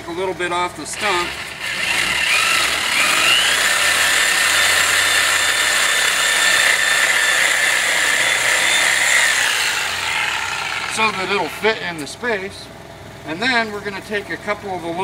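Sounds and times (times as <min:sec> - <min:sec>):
reciprocating saw cutting wood: 0:00.9 - 0:12.1.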